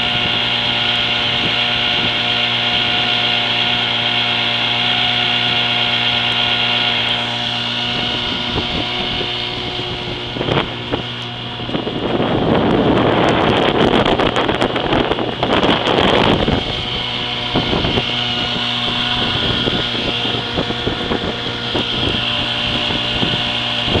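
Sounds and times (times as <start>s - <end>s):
outboard motor running: 0.0s - 24.0s
loud rushing noise: 6.8s - 24.0s.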